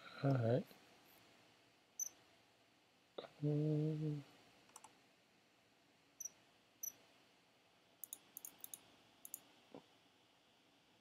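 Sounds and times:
computer mouse clicks: 4.7 - 5.0, 8.0 - 9.5.

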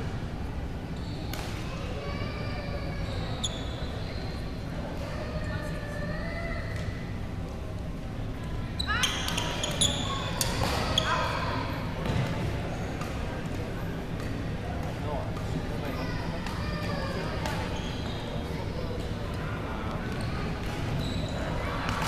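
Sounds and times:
shoes squeaking on court: 3.0 - 4.6, 8.8 - 11.4, 17.4 - 19.1, 20.0 - 21.6.

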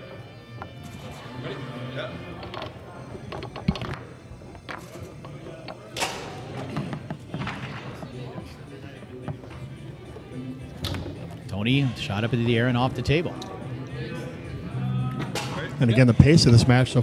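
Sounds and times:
foosball clacks: 2.4 - 8.0.

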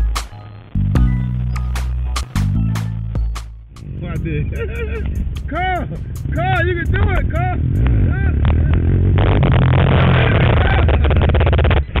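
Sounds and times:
quad engine running: 4.2 - 12.0.

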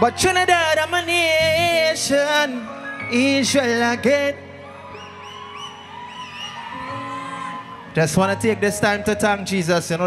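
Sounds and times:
crowd whooping: 4.4 - 8.6.

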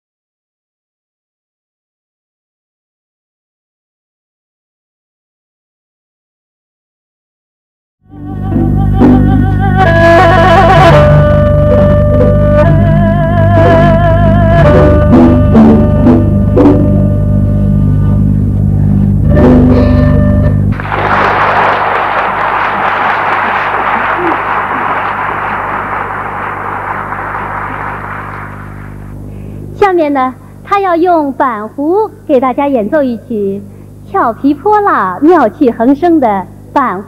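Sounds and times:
two-string fiddle melody with vibrato: 8.1 - 18.2
audience applause: 20.7 - 29.1.

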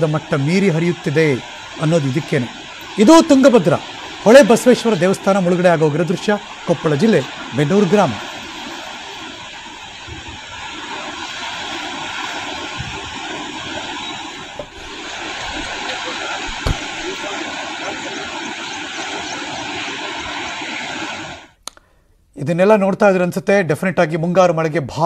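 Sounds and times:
fast-flowing river water rushing: 0.0 - 21.6.

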